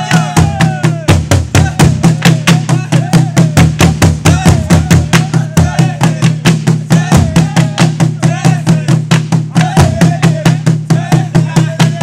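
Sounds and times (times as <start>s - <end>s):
large drums beaten with sticks: 0.0s - 12.0s
voices chanting and calling: 0.0s - 12.0s.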